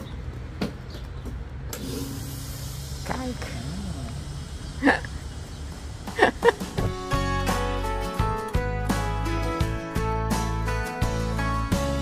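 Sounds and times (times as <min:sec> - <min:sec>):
gas hissing: 0:01.7 - 0:06.9.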